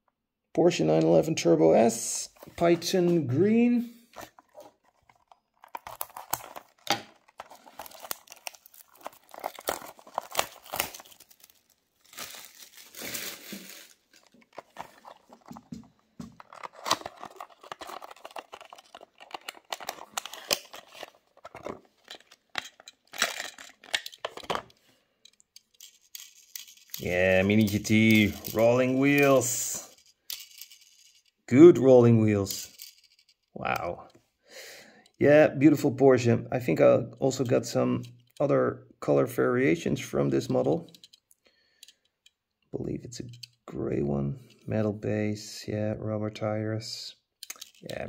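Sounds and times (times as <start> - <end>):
cardboard box and plastic crinkling: 4.2 - 24.8.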